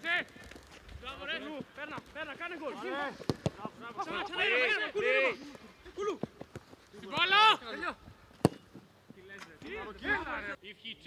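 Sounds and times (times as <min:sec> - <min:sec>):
football kicked hard: 0:03.2 - 0:03.7.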